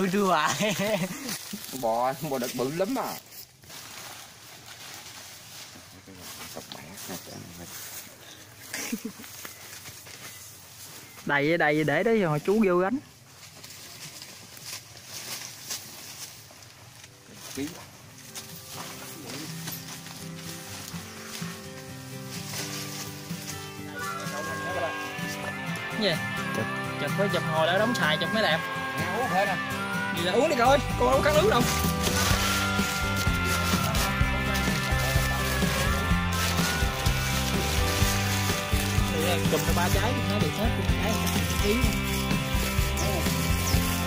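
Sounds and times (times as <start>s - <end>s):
background music with held notes: 16.6s - 44.0s
higher melody line: 18.2s - 44.0s.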